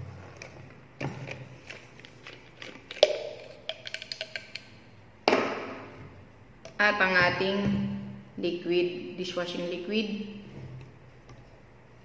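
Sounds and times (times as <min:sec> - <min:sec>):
plastic bottles clicking and tapping: 0:00.4 - 0:04.7.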